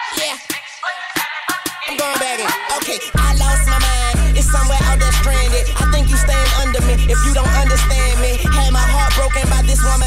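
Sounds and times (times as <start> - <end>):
hip-hop track with vocals: 0.0 - 10.0.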